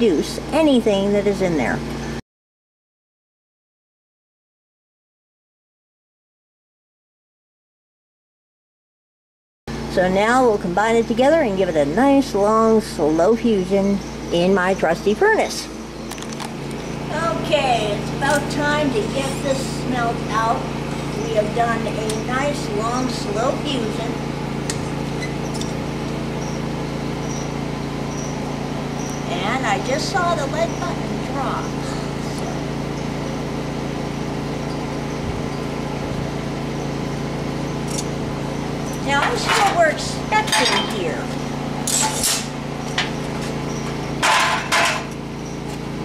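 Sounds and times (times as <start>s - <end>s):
machine hum: 9.7s - 46.0s.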